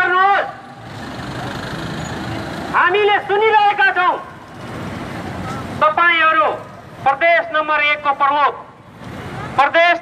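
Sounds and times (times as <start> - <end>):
man shouting: 0.0 - 0.6, 2.8 - 4.3
crowd on foot with faint voices: 0.0 - 10.0
street traffic: 0.0 - 10.0.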